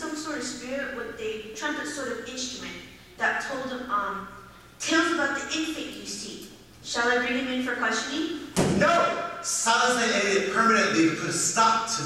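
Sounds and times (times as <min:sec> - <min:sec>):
thud on stage: 0:08.6 - 0:08.9
actor speaking: 0:08.7 - 0:12.0.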